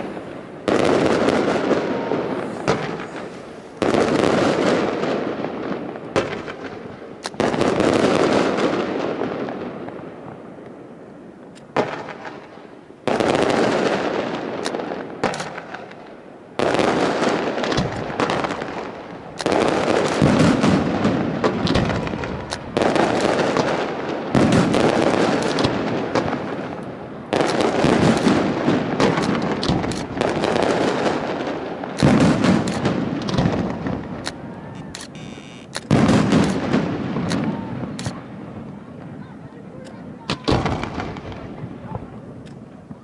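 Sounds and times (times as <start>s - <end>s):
firework shells bursting: 0.0s - 8.8s, 11.4s - 38.3s
crackling rumbling tail: 0.0s - 39.2s, 40.0s - 43.0s.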